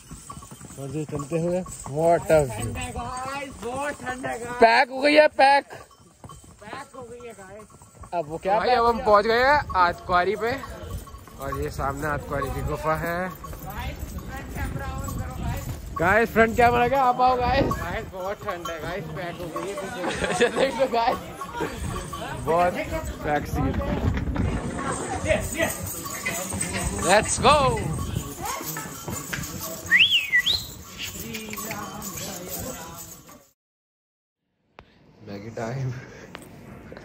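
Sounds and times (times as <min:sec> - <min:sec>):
pony hooves clip-clopping on pavement: 0:00.0 - 0:33.5
short whistle: 0:29.9 - 0:30.8.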